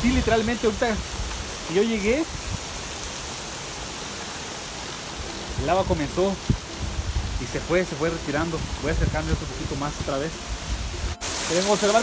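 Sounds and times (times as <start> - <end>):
waterfall rushing and splashing: 0.0 - 12.0.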